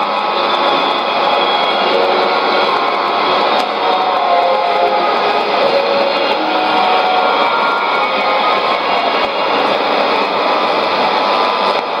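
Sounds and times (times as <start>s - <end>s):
faint radio music: 0.0s - 12.0s
radio static and hiss: 0.0s - 12.0s.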